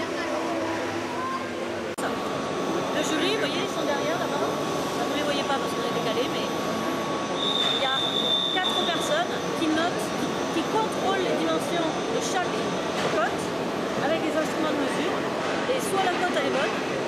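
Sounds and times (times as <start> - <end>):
higher machine whine: 0.0 - 17.0
many voices: 0.0 - 17.0
milling machines whining: 0.0 - 17.0.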